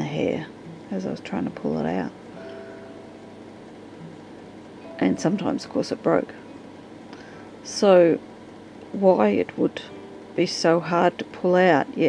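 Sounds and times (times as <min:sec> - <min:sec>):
faint steady hum: 0:00.0 - 0:12.0
faint held tone: 0:02.3 - 0:06.6.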